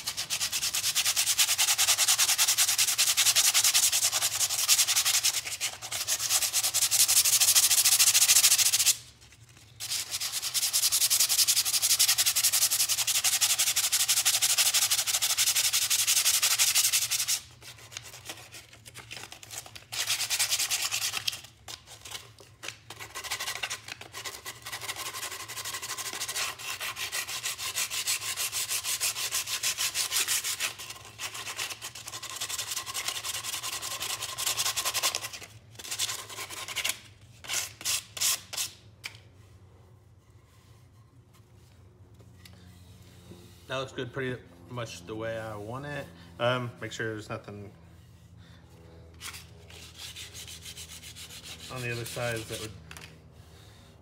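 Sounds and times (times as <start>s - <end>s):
sandpaper rasping on wood: 0.0s - 9.0s, 9.8s - 22.2s, 22.9s - 38.8s, 49.2s - 52.8s.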